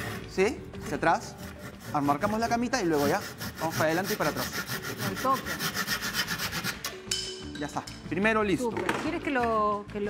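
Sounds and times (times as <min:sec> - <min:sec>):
handsaw cutting wood: 0:00.0 - 0:07.0.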